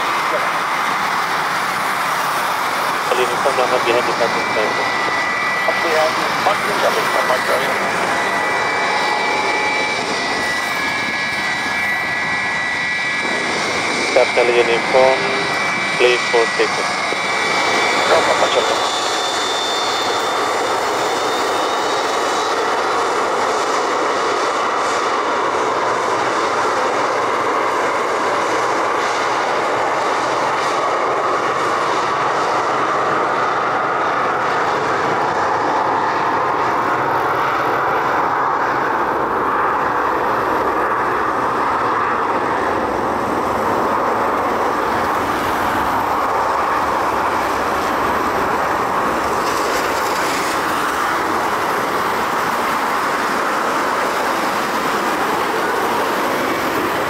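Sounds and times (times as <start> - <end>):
jet engines at takeoff power: 0.0 - 57.0.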